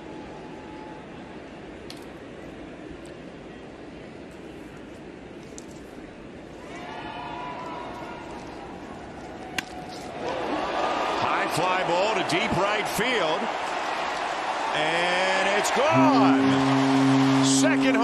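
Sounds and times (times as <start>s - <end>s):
ballpark crowd cheering: 6.6s - 18.0s.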